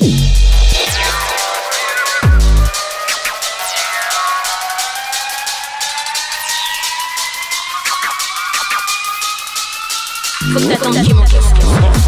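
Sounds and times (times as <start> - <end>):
falling synth sweeps: 0.9 - 11.1.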